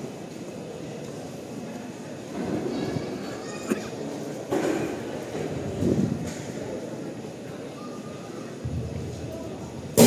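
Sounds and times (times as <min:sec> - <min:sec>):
echoing murmur of crowd: 0:00.0 - 0:10.0.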